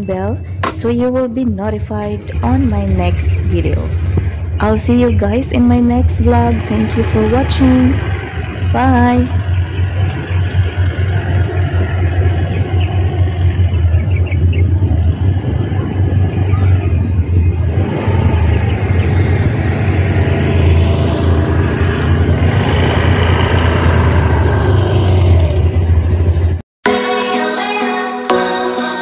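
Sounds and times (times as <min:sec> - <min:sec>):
wind noise on microphone: 0:00.0 - 0:26.6
scooter engine riding past: 0:02.2 - 0:26.6.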